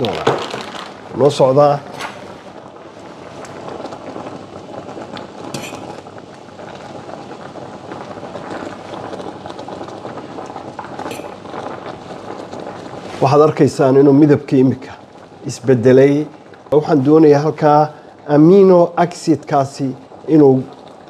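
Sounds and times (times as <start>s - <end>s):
water boiling in pot: 0.0s - 21.0s
fork clinking against pot: 5.6s - 5.9s.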